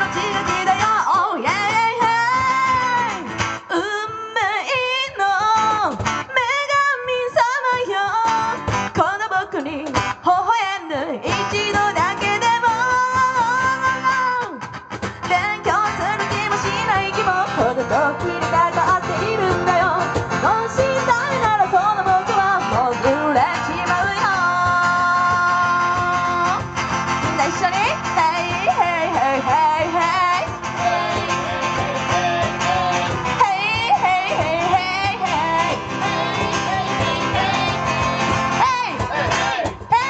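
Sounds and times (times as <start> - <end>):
cajon: 0.0 - 10.2, 11.2 - 40.0
acoustic guitar: 0.0 - 40.0
woman singing into microphone: 0.0 - 40.0.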